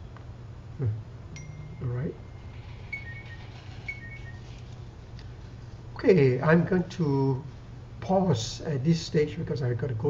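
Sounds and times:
low steady hum: 0:00.0 - 0:10.0
faint two-note tones: 0:01.4 - 0:04.7.

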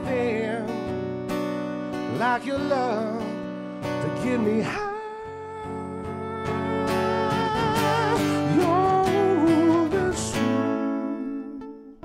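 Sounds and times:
man singing with vibrato: 0:00.0 - 0:01.1, 0:02.0 - 0:12.0
guitar chords ringing: 0:00.0 - 0:12.0.

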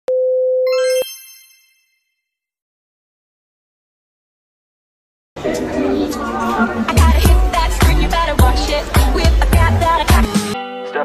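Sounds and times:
bright chime: 0:00.7 - 0:02.2.

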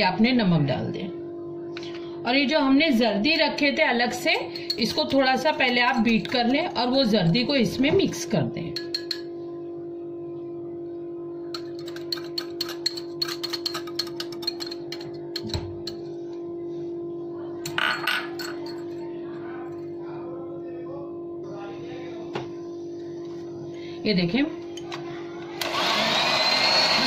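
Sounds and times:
fork clinking against glass bowl: 0:04.5 - 0:06.8, 0:08.7 - 0:09.3, 0:11.6 - 0:16.1, 0:17.7 - 0:19.0.

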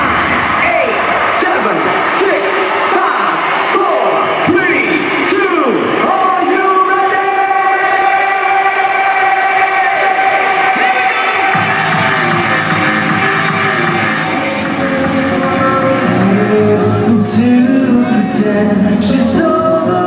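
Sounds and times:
crowd: 0:00.0 - 0:20.0
synth chords with pitch glides: 0:07.3 - 0:20.0
low bass: 0:11.5 - 0:20.0.

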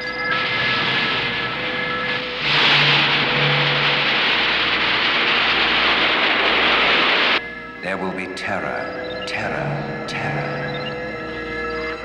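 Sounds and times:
missile launch roar: 0:00.3 - 0:07.4.

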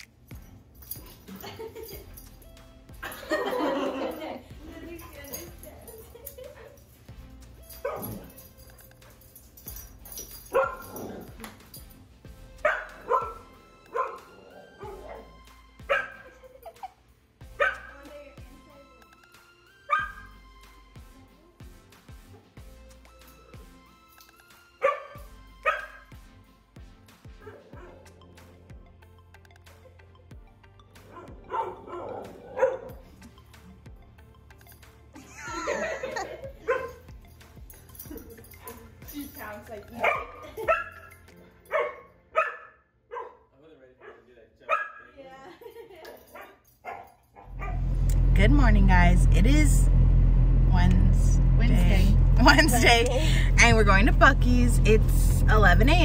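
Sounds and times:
dog barking: 0:07.7 - 0:08.4, 0:10.5 - 0:11.4, 0:12.6 - 0:16.4, 0:17.6 - 0:18.0, 0:19.9 - 0:20.3, 0:24.8 - 0:26.1, 0:27.4 - 0:28.1, 0:31.1 - 0:33.1, 0:36.6 - 0:37.1, 0:40.0 - 0:45.2, 0:46.3 - 0:48.0.

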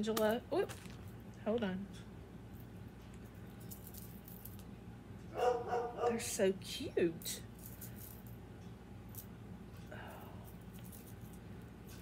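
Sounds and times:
dog barking: 0:05.3 - 0:06.2.

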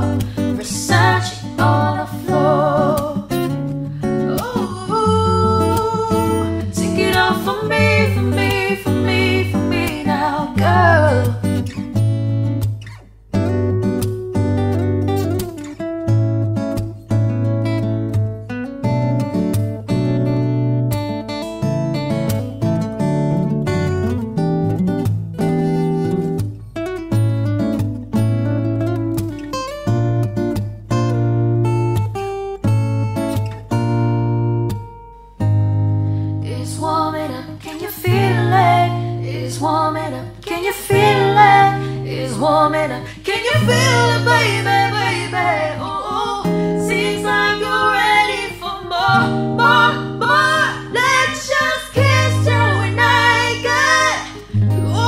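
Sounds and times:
woman singing: 0:00.0 - 0:03.5, 0:04.2 - 0:11.7, 0:36.4 - 0:55.0
guitar chords: 0:00.0 - 0:55.0.

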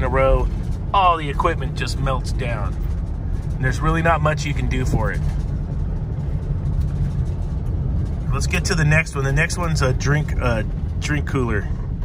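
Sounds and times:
vehicle engine and tyre rumble: 0:00.0 - 0:12.0.

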